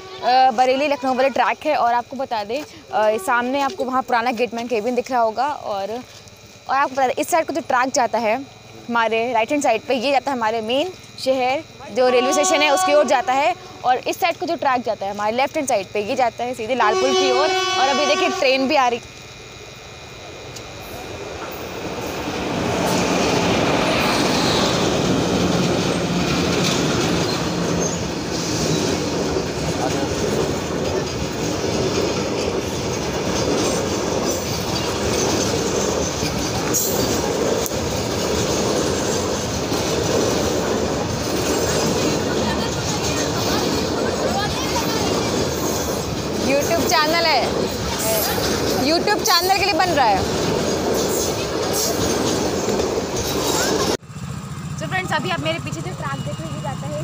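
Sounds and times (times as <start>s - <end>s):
freight train passing: 0.0s - 57.0s
wagon wheels rushing on rails: 20.6s - 57.0s.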